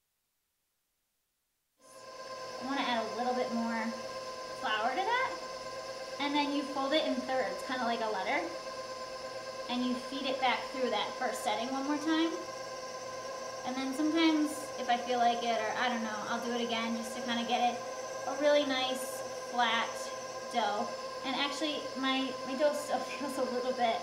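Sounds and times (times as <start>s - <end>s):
faint hum: 1.8s - 24.0s
woman talking: 2.6s - 4.0s, 4.6s - 5.4s, 6.2s - 8.6s, 9.7s - 12.5s, 13.6s - 24.0s.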